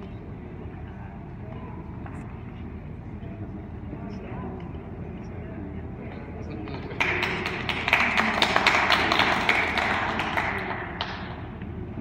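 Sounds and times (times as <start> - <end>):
audience applauding: 6.8 - 11.4.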